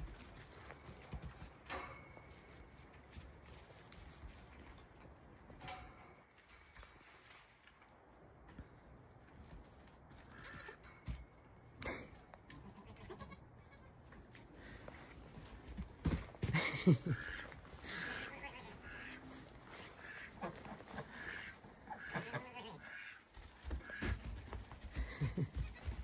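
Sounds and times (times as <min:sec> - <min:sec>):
goat kids bleating: 0:12.5 - 0:14.1, 0:17.2 - 0:19.2, 0:21.0 - 0:23.2, 0:24.9 - 0:26.0.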